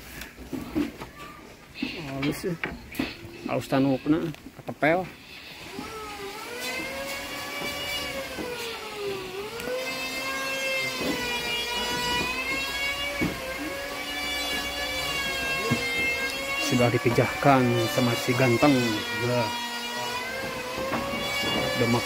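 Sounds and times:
whining machine hum: 0:05.7 - 0:22.0.

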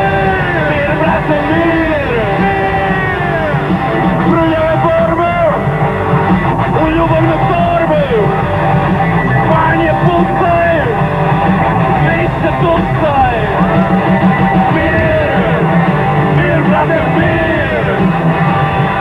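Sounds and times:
man singing into a microphone: 0:00.0 - 0:03.5, 0:16.3 - 0:18.1
live rock band playing: 0:00.0 - 0:19.0.

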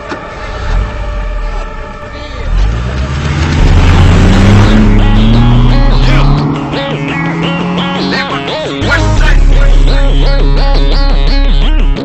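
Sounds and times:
engine revving up: 0:00.4 - 0:11.1
droning held tones: 0:00.4 - 0:11.8.

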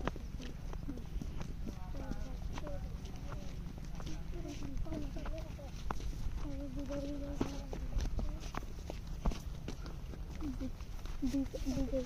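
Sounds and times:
footsteps on dirt path: 0:00.0 - 0:12.0
person murmuring: 0:10.4 - 0:12.0.

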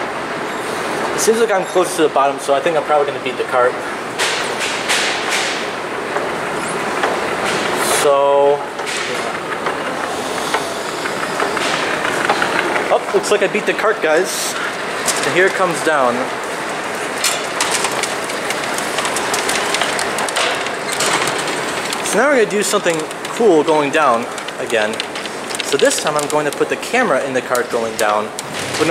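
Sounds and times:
escalator mechanical rattling hum: 0:00.0 - 0:28.9
sharp clicks: 0:17.2 - 0:26.8.

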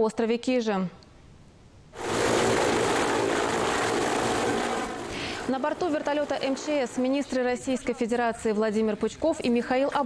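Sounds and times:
helicopter hovering: 0:02.0 - 0:08.2.

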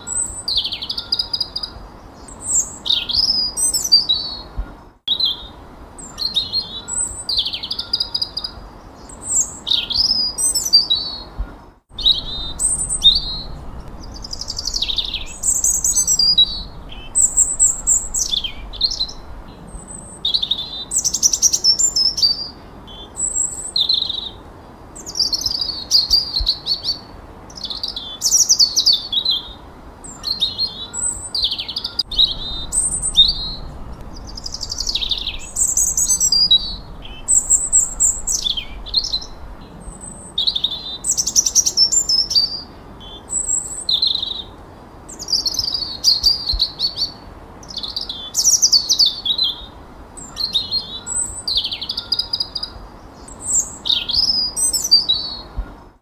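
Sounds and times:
songbirds singing: 0:00.0 - 0:55.8.

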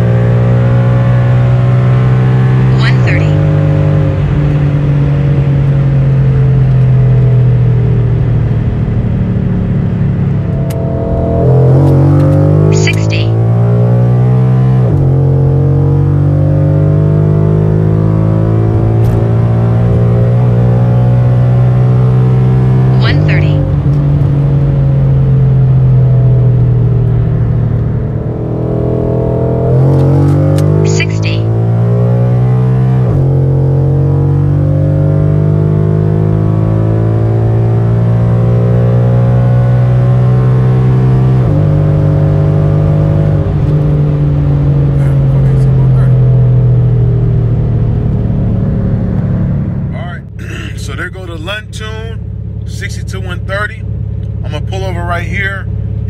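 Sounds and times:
car engine at full throttle: 0:00.0 - 0:56.0.

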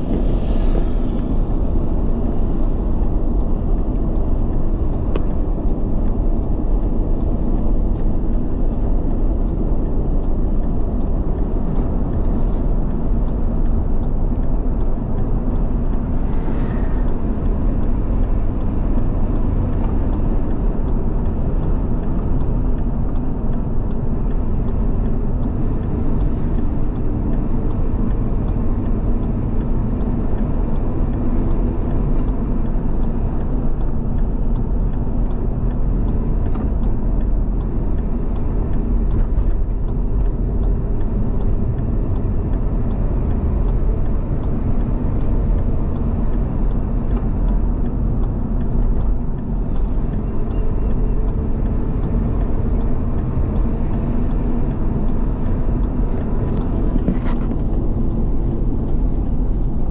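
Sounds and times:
car engine and tyre noise: 0:00.0 - 0:59.9.

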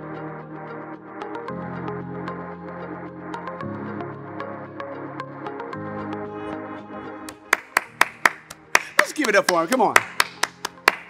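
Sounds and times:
quiet background music: 0:00.1 - 0:11.0
person clapping hands: 0:07.2 - 0:11.0.

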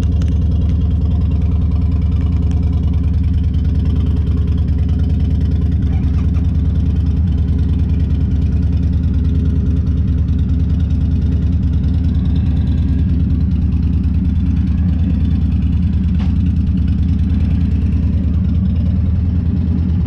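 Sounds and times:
scooter engine idling: 0:00.0 - 0:20.0.

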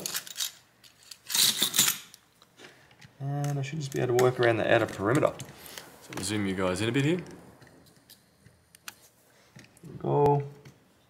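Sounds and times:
metal hand tools clinking: 0:00.0 - 0:02.2.

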